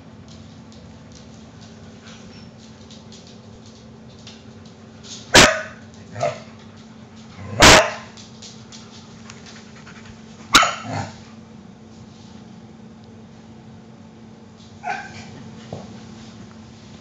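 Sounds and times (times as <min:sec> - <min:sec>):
dog barking: 0:05.3 - 0:06.4, 0:07.6 - 0:08.1, 0:10.5 - 0:11.1, 0:14.8 - 0:15.3.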